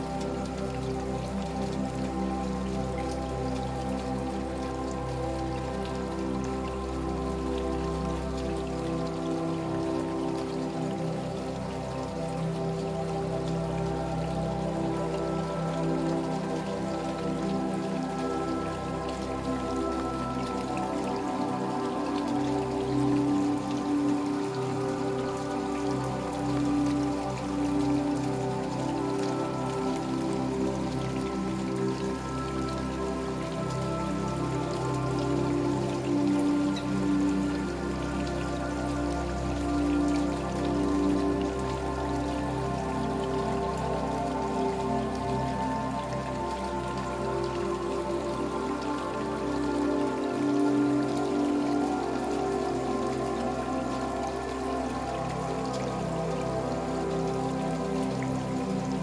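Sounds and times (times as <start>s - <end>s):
calm new-age music: 0.0s - 59.0s
steady rain falling: 0.0s - 59.0s.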